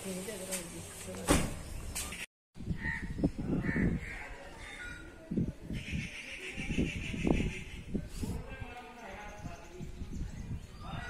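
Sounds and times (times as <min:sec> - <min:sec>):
birds calling and chattering: 0:01.6 - 0:11.0.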